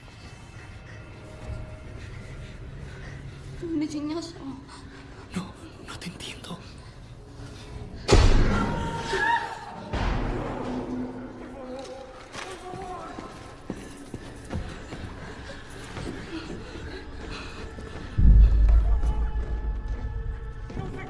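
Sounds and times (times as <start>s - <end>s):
tense low film music: 0.0s - 21.0s
deep low boom: 18.2s - 19.9s.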